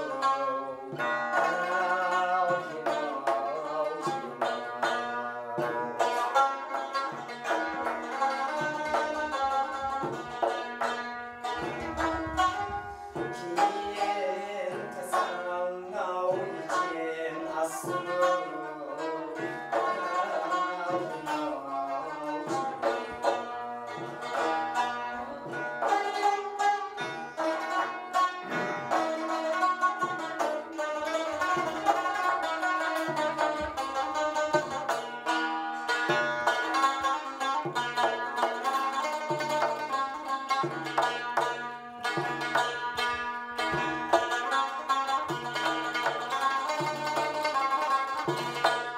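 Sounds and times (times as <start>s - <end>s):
frame drum strokes: 0.0s - 48.9s
plucked lute melody: 0.0s - 48.9s.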